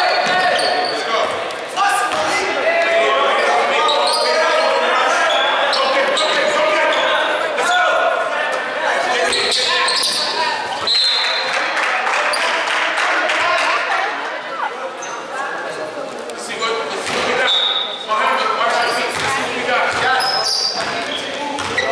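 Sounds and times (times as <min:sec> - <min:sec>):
people calling out: 0:01.8 - 0:11.6
basketball bouncing on hardwood: 0:19.1 - 0:19.3.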